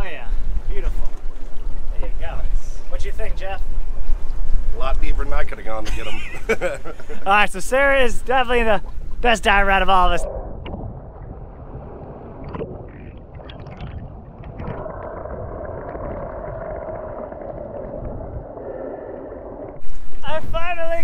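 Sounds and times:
muffled underwater noise: 8.8s - 20.6s.

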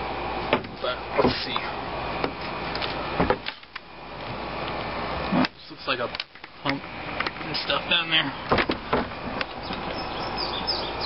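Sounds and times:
birds chirping: 9.4s - 11.0s.

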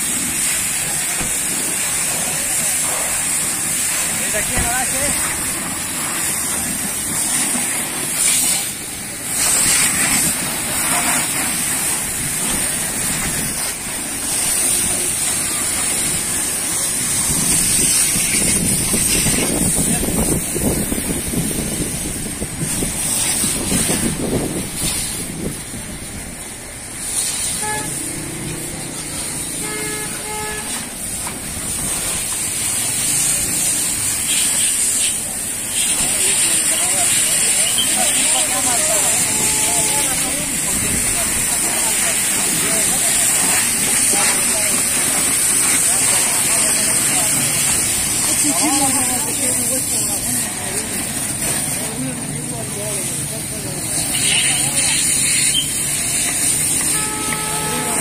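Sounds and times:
pressure washer jet hissing: 0.0s - 58.0s
street traffic rumbling: 0.0s - 58.0s
vehicle horn beeps: 27.5s - 28.3s, 29.5s - 30.8s, 39.2s - 40.1s, 56.8s - 58.0s.

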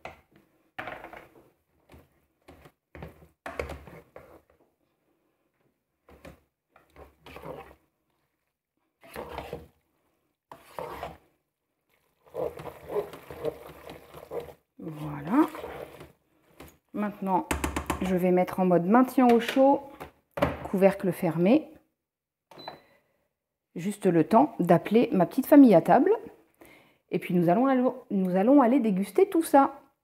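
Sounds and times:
spatula scraping metal bowl: 2.5s - 4.6s, 6.1s - 7.9s, 9.0s - 9.8s, 10.5s - 11.3s, 12.0s - 16.8s.

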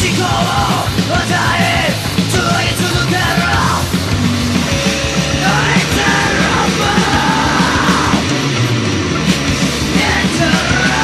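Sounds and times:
male vocal singing: 0.0s - 3.8s, 5.4s - 8.2s, 9.9s - 11.0s
distorted electric guitar: 0.0s - 11.0s
electric bass: 0.0s - 11.0s
fast drumbeat: 0.0s - 11.0s.

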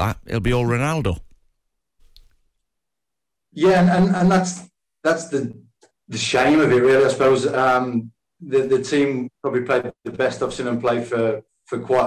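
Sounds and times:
person speaking: 0.0s - 1.5s.

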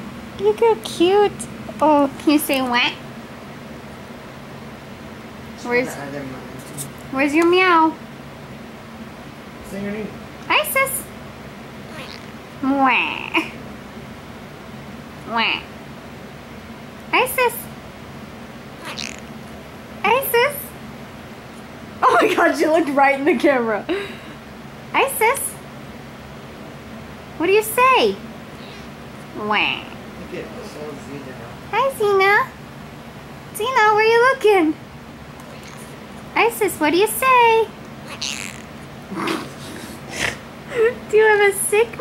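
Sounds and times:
cat meowing: 11.9s - 12.3s, 18.8s - 19.3s, 38.0s - 38.7s.

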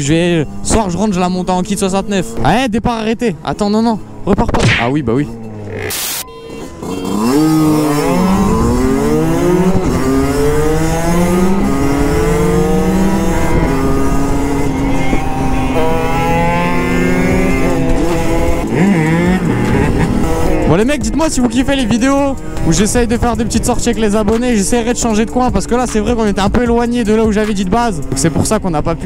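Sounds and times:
dirt bikes revving hard: 5.3s - 29.0s
burst of static noise: 5.7s - 6.3s.

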